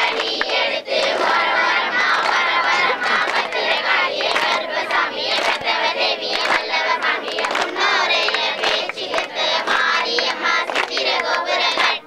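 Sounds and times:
group chanting a rhyme: 0.0 - 12.0.

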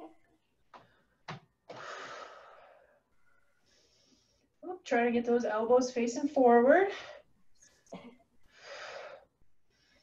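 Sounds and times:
woman breathing hard: 0.8 - 4.5, 8.4 - 10.0.

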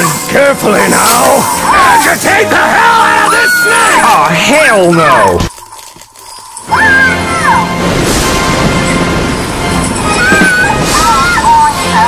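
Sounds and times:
loud high cry: 2.7 - 4.2, 6.7 - 7.7, 10.0 - 12.0.

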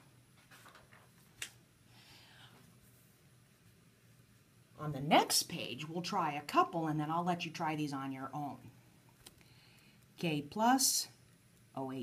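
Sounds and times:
paper rustling: 0.4 - 1.5.

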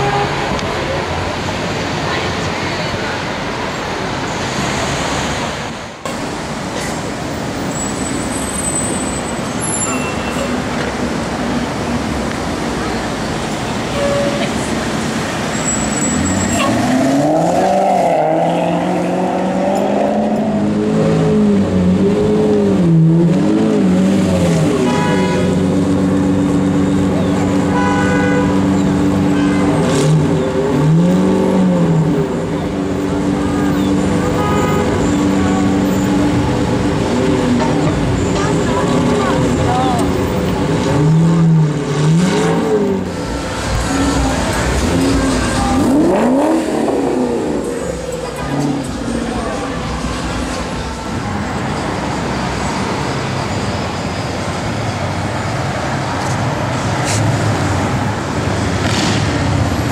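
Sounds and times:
car horn: 0.0 - 0.6, 13.9 - 14.6, 24.8 - 25.6, 27.6 - 30.2, 33.4 - 35.2, 43.8 - 46.5
sports car engines revving: 10.6 - 59.9.

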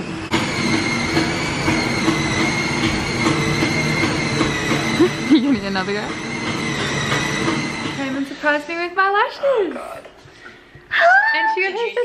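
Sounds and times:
low stepping electronic tune: 0.3 - 8.9.

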